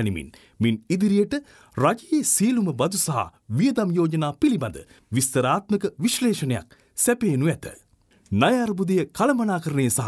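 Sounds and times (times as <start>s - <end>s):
narrator reading aloud: 0.0s - 10.0s.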